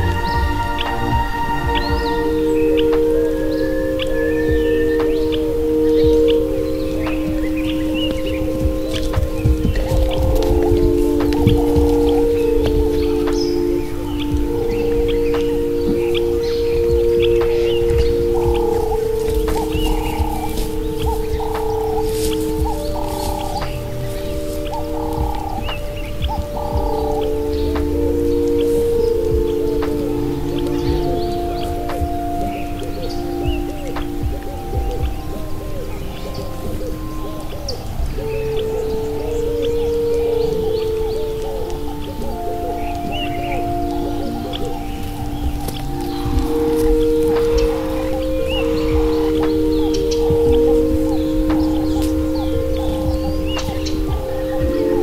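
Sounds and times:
ambient synthesizer chords: 0.0s - 55.0s.

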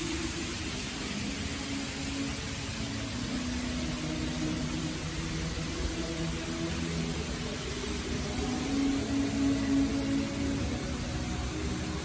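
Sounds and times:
constant hiss: 0.0s - 12.0s.

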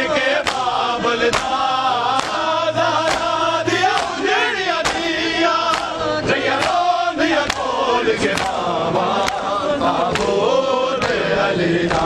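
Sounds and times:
men chanting a lament: 0.0s - 12.0s
palms slapping chests: 0.4s - 9.5s.

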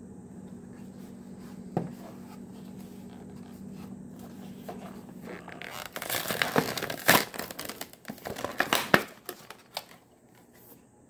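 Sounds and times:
steady low hum: 0.0s - 11.0s
plastic package rubbing and scraping: 2.0s - 10.0s.

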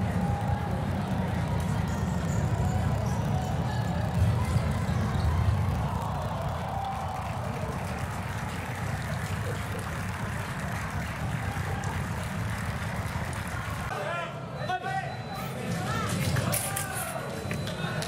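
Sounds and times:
low rumbling sports hall noise: 0.0s - 18.0s.

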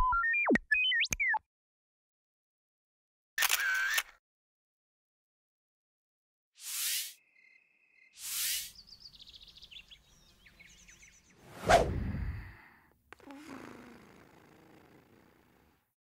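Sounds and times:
cartoon swish: 11.4s - 12.4s
whoosh sweeping down into rumble: 11.5s - 12.5s.

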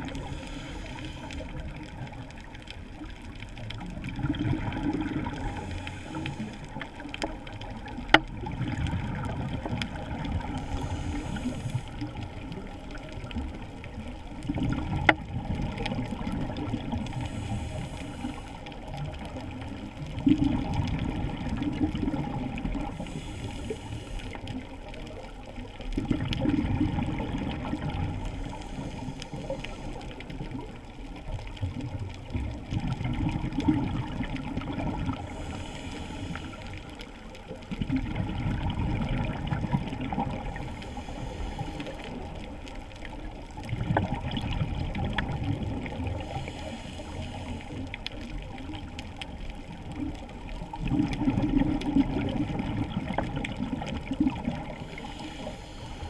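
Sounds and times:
regulator inhale hiss: 0.0s - 1.9s, 5.3s - 7.0s, 10.4s - 12.2s, 17.0s - 19.0s, 22.8s - 24.7s, 28.3s - 30.6s, 35.1s - 37.2s, 40.3s - 42.6s, 46.0s - 48.2s, 54.7s - 56.0s
exhaled bubbles underwater: 0.0s - 56.0s
faint crackling background: 0.0s - 56.0s.

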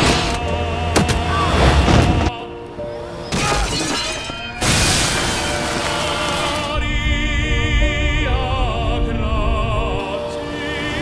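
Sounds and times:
music playing: 0.0s - 11.0s
glass door shattering: 3.3s - 6.6s.

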